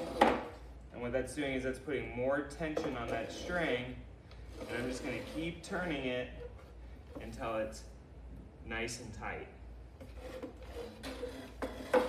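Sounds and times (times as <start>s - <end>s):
chair legs scraping on tile floor: 0.0s - 0.6s, 4.5s - 5.8s, 10.0s - 12.0s.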